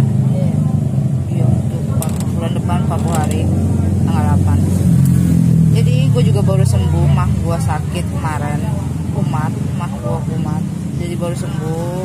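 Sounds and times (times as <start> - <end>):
low engine hum: 0.0 - 12.0
people talking: 0.2 - 4.8, 5.8 - 12.0.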